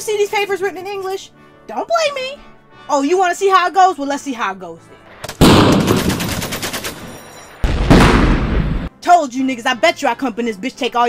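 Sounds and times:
machine-gun fire: 0:05.3 - 0:08.9.

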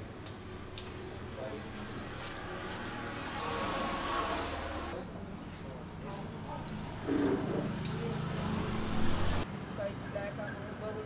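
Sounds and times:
vehicle passing: 0:01.2 - 0:05.0, 0:06.4 - 0:09.9.

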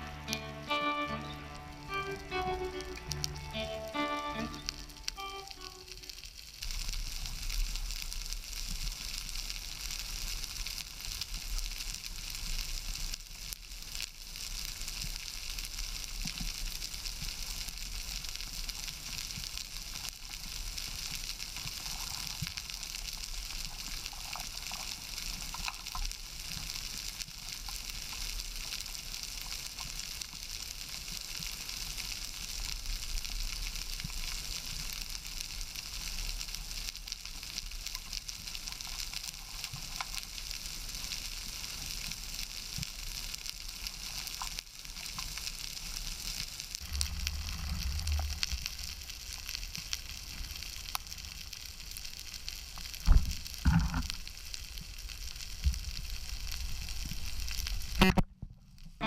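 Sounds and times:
underwater crackling: 0:01.2 - 0:58.4.

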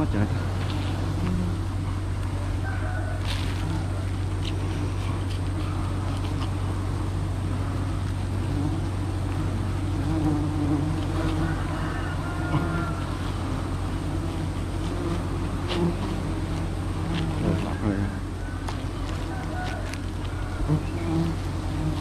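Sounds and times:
bees buzzing: 0:00.0 - 0:22.0
constant low hum: 0:00.0 - 0:22.0.

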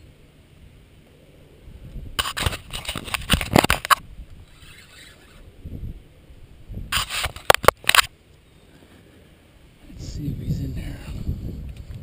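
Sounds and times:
hand scraping camera housing: 0:02.2 - 0:05.4, 0:06.9 - 0:08.1.

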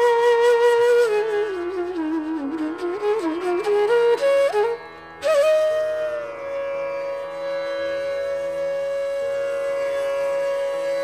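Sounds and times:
bamboo flute long note: 0:00.0 - 0:11.0.

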